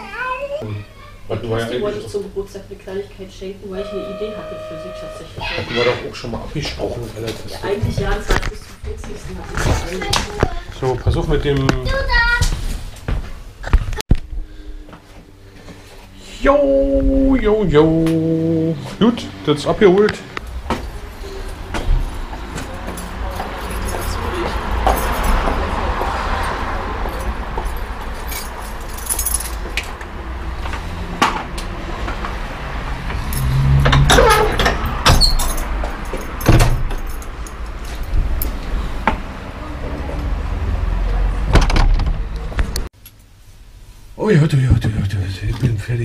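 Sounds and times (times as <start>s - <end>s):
keys and doors clicking and clanking: 20.7s - 25.7s, 26.4s - 30.0s, 33.2s - 38.6s.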